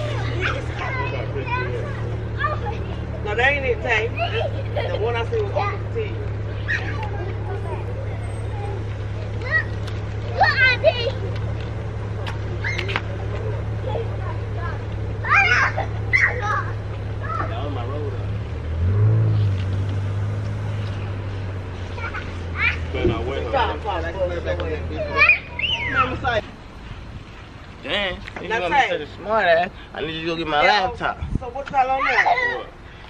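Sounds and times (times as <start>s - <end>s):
children shouting: 0.0s - 3.2s, 4.0s - 17.9s, 24.9s - 26.4s, 31.8s - 32.7s.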